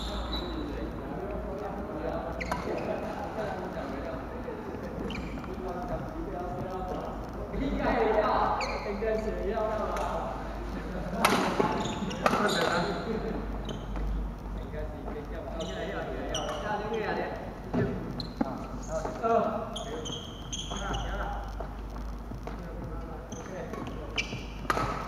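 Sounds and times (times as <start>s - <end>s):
voices echoing: 0.0s - 25.0s
shoes squeaking on wooden floor: 4.6s - 7.2s, 8.2s - 9.4s, 11.6s - 13.0s, 13.6s - 14.3s, 15.1s - 17.1s, 17.7s - 25.0s.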